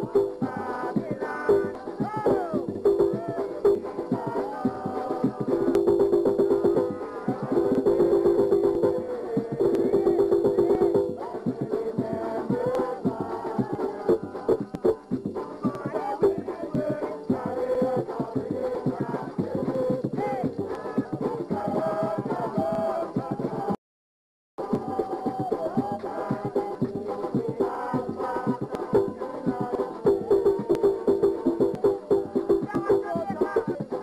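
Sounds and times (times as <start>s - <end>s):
fast hand percussion: 0.0s - 23.8s, 24.6s - 34.0s
voices singing: 0.0s - 23.8s, 24.6s - 34.0s.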